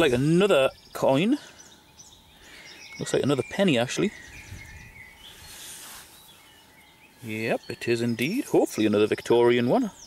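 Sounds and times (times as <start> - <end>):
faint bird chirps: 0.0 - 10.0
hand scraping through soil: 5.3 - 6.5.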